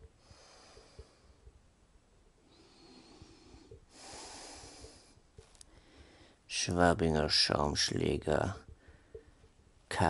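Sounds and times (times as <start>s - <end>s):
man breathing in sleep: 0.0s - 1.5s, 2.4s - 6.4s.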